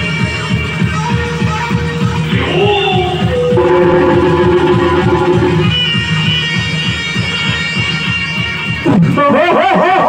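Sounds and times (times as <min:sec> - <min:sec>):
fast drum beat: 0:02.3 - 0:05.8
long held melody notes: 0:02.3 - 0:07.0.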